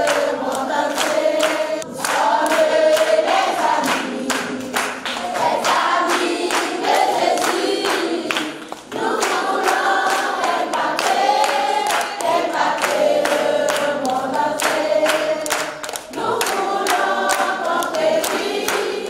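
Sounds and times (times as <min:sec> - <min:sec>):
group singing worship song: 0:00.0 - 0:19.0
sharp hand claps: 0:00.0 - 0:19.0.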